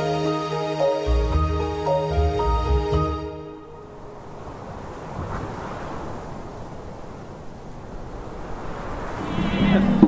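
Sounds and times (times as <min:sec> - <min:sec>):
steady rushing noise: 0:04.1 - 0:10.0.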